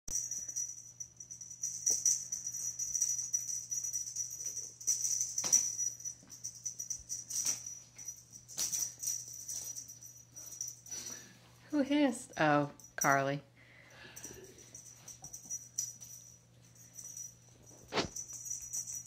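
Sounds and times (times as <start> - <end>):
small bell jingling: 0.1 - 19.0.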